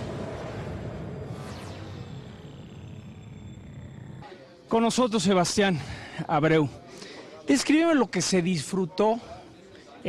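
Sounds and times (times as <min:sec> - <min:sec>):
falling electronic tone: 0:00.0 - 0:05.8.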